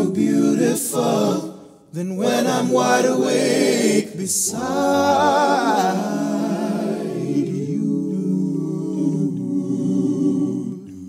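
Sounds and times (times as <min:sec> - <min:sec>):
a cappella backing harmonies: 0:00.0 - 0:11.0.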